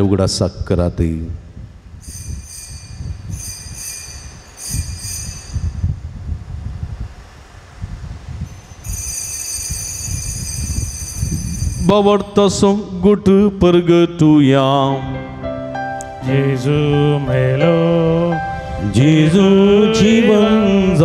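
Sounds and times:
altar bells ringing: 0:02.0 - 0:05.9, 0:08.4 - 0:12.2.

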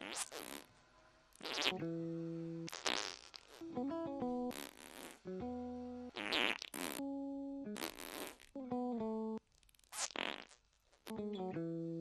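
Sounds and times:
fart-like synth tones: 0:00.0 - 0:00.7, 0:01.4 - 0:01.9, 0:02.6 - 0:03.7, 0:04.4 - 0:05.3, 0:06.1 - 0:07.1, 0:07.7 - 0:08.6, 0:09.8 - 0:10.6.

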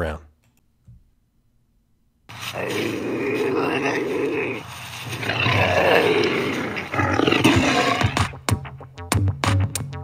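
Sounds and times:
drawn-out animal roars: 0:02.5 - 0:08.2.

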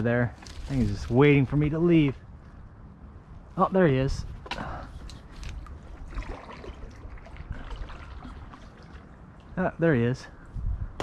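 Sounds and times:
water lapping around kayak: 0:04.5 - 0:09.6
small water drips: 0:05.4 - 0:09.6.

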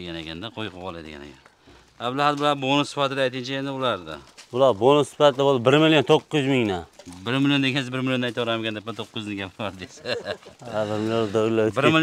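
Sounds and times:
man calling in drawn-out syllables: 0:10.6 - 0:12.0.

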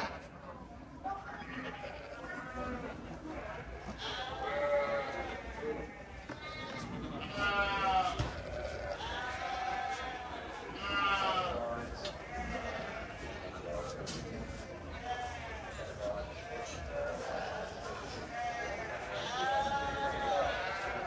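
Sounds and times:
sheep bleating: 0:03.4 - 0:13.6, 0:16.4 - 0:21.0.

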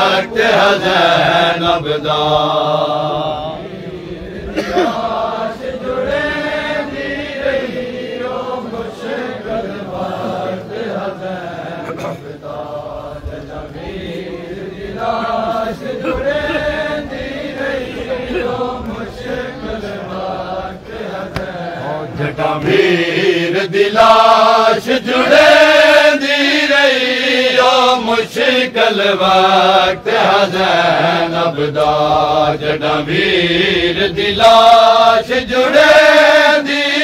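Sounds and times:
crowd of men chanting: 0:00.0 - 0:37.0.

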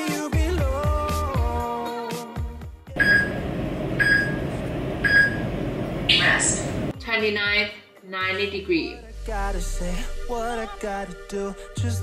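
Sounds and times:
short timer beeps: 0:03.0 - 0:03.4, 0:04.0 - 0:04.4, 0:05.0 - 0:05.5.

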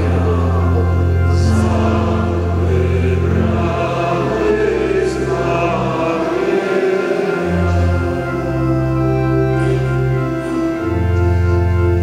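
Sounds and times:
church organ: 0:00.0 - 0:12.0
voices singing a hymn: 0:00.0 - 0:12.0.

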